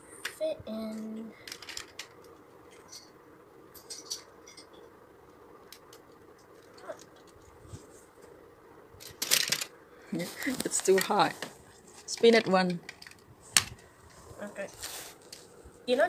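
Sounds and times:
plastic toy clattering: 1.4s - 3.0s, 9.0s - 9.7s, 12.1s - 13.8s.

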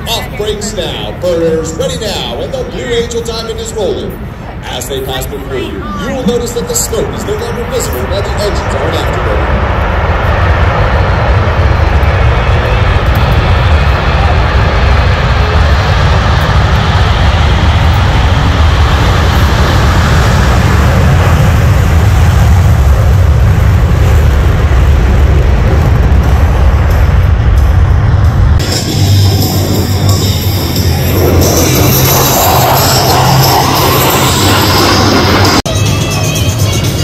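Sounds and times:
jet afterburner roar: 0.0s - 37.0s.

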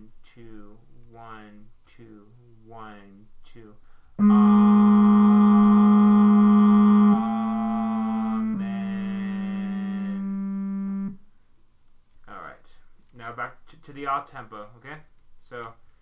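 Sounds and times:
electronic keyboard held notes: 4.2s - 11.2s.

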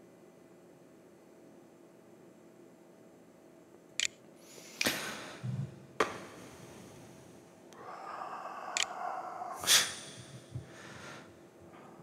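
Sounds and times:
person breathing: 4.4s - 12.0s
nose sniff: 8.8s - 11.3s.

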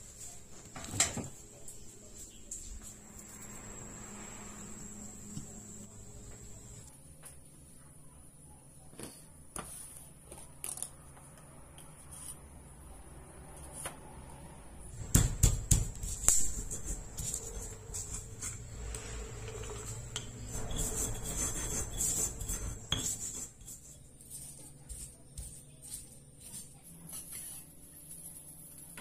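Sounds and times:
pestle knocking in mortar: 15.0s - 16.3s
pestle grinding against stone: 15.3s - 26.6s
pestle clinking on stone mortar: 20.2s - 23.8s.

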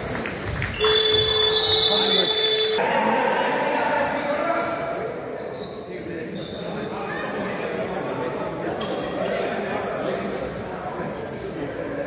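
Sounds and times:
indistinct voices echoing in gym: 0.1s - 12.0s.

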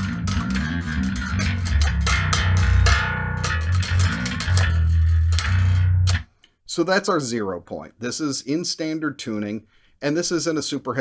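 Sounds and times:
fast electric bass riff: 0.0s - 6.3s.

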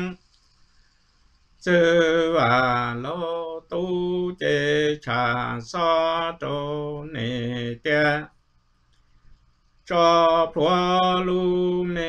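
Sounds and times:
man singing unaccompanied chant: 0.0s - 0.3s, 1.6s - 8.3s, 9.8s - 12.0s.

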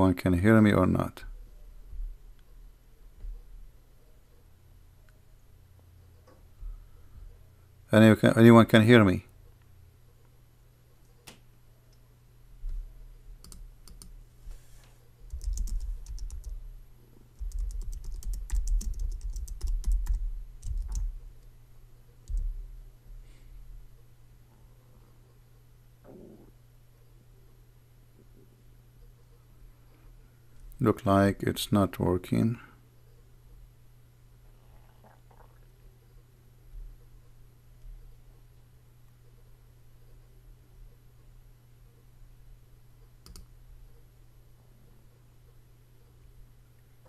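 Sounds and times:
steady low hum: 0.0s - 47.0s
keyboard typing and clicking: 13.4s - 14.2s, 15.3s - 16.6s, 17.4s - 21.2s, 22.2s - 22.5s, 43.2s - 43.5s.

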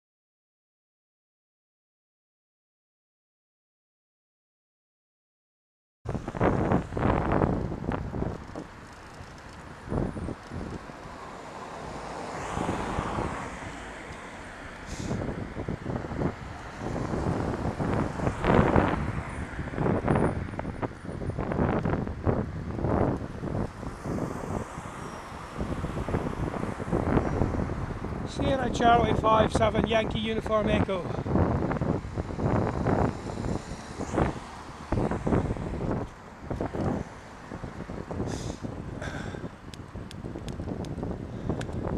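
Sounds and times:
wind buffeting microphone: 6.1s - 13.8s, 14.7s - 41.9s
road traffic: 6.1s - 41.9s
car passing close by: 10.9s - 20.8s, 22.8s - 28.4s, 31.2s - 39.4s.

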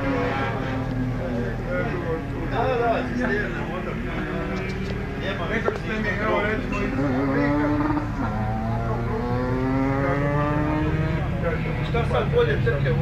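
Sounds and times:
motorcycle engine running: 5.8s - 13.0s.

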